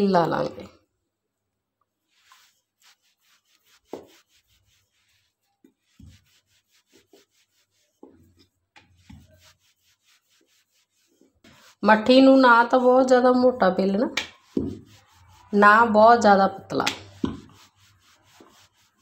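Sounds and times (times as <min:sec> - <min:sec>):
rolling pin rubbing on dough: 0:02.1 - 0:19.0.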